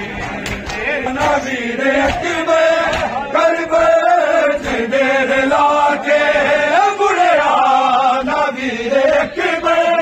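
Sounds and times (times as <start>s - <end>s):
men chanting a lament: 0.0s - 10.0s.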